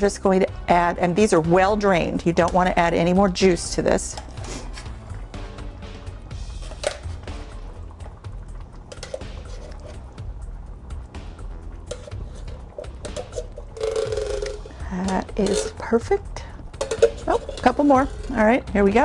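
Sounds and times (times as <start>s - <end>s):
soft background music: 0.0s - 19.0s
metal spoon scraping tin can: 4.1s - 5.0s, 6.5s - 7.3s, 8.9s - 10.1s, 11.8s - 18.6s.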